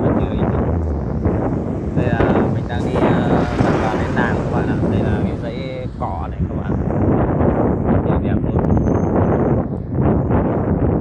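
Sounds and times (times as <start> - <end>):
indistinct voices: 0.0 - 7.0
wind buffeting microphone: 0.0 - 11.0.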